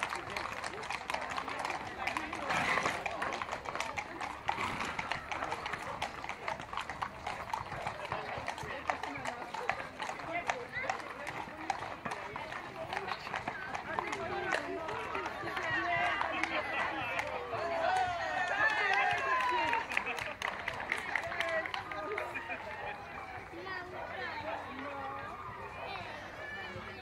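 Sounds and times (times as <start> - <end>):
horse hooves on asphalt: 0.0 - 27.0
people talking: 0.0 - 27.0.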